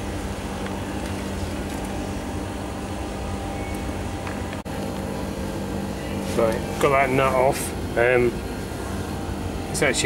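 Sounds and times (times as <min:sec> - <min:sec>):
machinery humming: 0:00.0 - 0:10.0.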